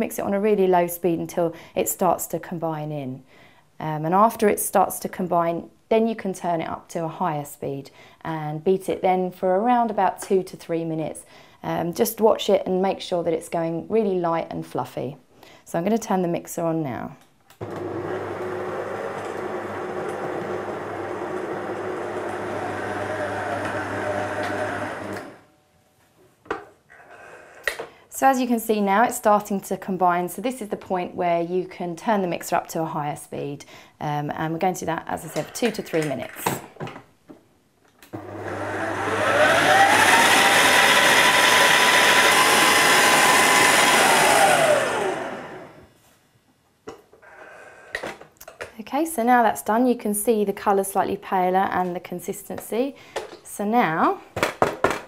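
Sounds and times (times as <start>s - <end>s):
stand mixer motor hum: 17.6s - 25.4s, 38.2s - 45.8s.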